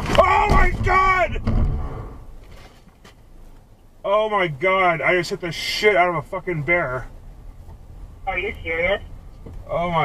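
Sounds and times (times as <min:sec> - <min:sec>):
car driving rumble inside cabin: 0:03.2 - 0:10.0.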